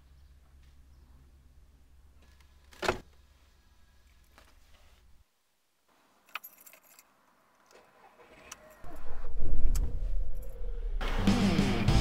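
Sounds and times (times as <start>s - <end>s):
car keys jingling: 6.3s - 7.1s
car engine starting and running: 8.9s - 12.0s.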